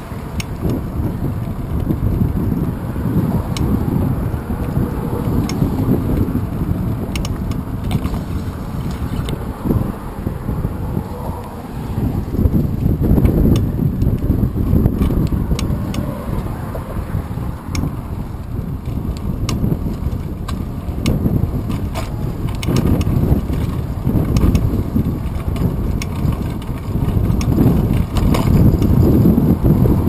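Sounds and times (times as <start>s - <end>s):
bicycle clicks and rattles: 0.0s - 30.0s
wind buffeting microphone: 0.0s - 30.0s.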